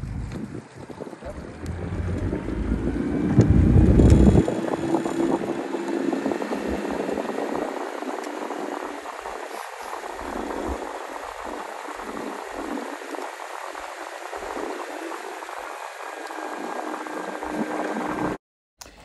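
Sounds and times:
water rushing along boat hull: 0.0 - 18.4
loud low rumble: 1.0 - 7.8.

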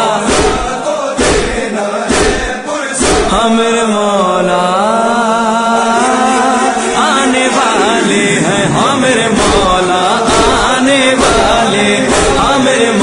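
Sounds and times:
man chanting devotional refrain: 0.0 - 13.0
steady beat: 0.3 - 3.5, 7.5 - 13.0.

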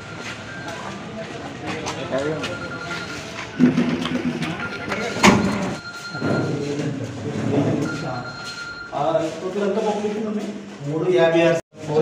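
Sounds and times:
people talking: 0.3 - 12.0.

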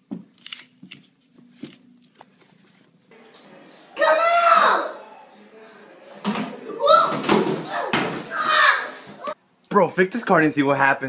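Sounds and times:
toilet seat clattering: 6.2 - 8.4
child crying out: 6.8 - 9.4.

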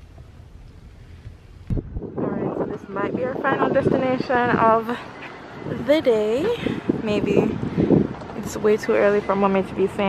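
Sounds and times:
low rumble: 0.0 - 8.8
wind gust buffeting microphone: 0.7 - 10.0.

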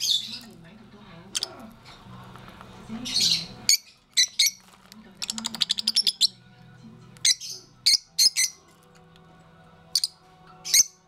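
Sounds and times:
lovebirds chirping: 0.0 - 11.0.

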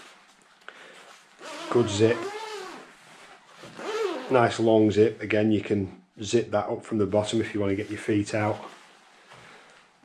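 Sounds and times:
man speaking: 1.7 - 2.3, 4.2 - 8.8.

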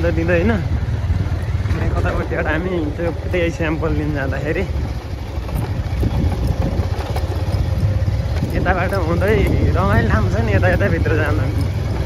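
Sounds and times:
motorcycle engine running: 0.0 - 12.0.

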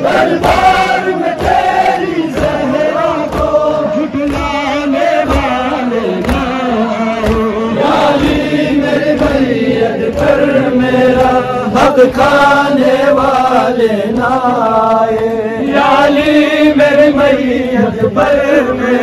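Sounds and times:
crowd of men chanting: 0.0 - 19.0.

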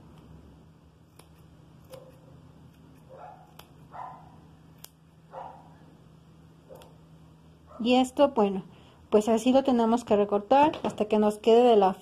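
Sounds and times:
scissors snipping yarn: 1.0 - 3.9, 4.7 - 5.2, 6.7 - 7.0
dog barking: 1.9 - 2.3, 3.1 - 4.4, 5.3 - 5.8.

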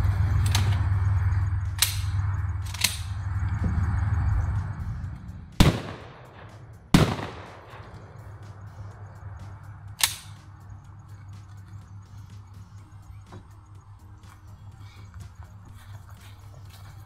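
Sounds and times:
steady low hum: 0.0 - 17.0
shotgun shots: 5.6 - 8.2.

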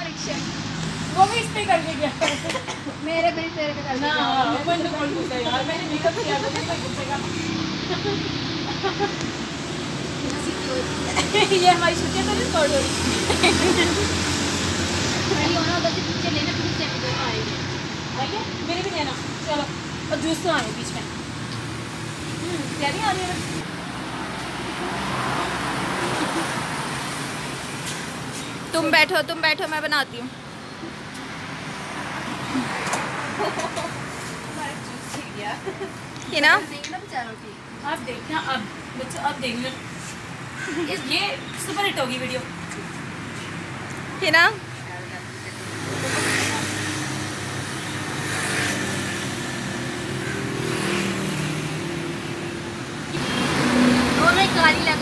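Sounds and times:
women talking and laughing: 0.0 - 21.6, 22.2 - 23.7, 25.1 - 27.3, 28.2 - 30.4, 31.0 - 52.2
road traffic noise: 0.0 - 55.0
vehicle passing: 0.0 - 55.0.

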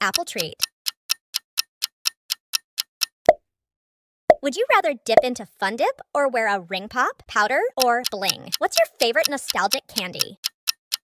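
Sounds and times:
clock-like timer ticks: 0.0 - 3.4, 7.3 - 11.0.

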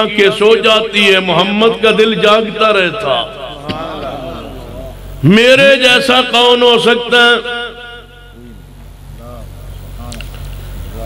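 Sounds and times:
low steady rumble: 0.0 - 6.5, 7.7 - 11.0
amplified speech: 0.0 - 8.0.

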